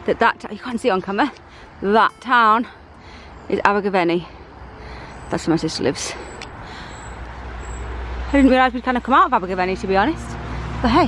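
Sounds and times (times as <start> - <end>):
distant road traffic rumble: 0.0 - 11.0.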